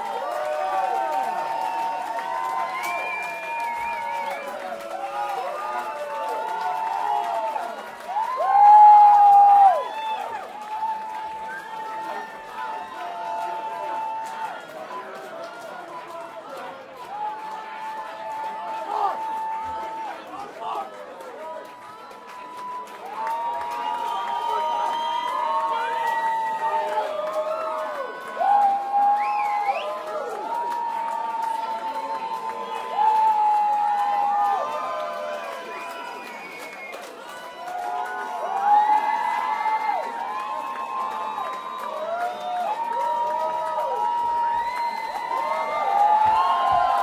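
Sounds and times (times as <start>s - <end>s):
crowd shouting and whooping: 0.0s - 16.2s, 17.0s - 20.8s, 21.5s - 47.0s.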